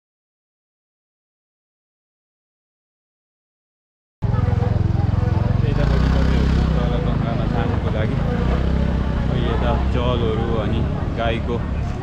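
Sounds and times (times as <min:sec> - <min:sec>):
faint voices: 0:04.2 - 0:12.0
vehicle engine pulsing rumble: 0:04.2 - 0:12.0.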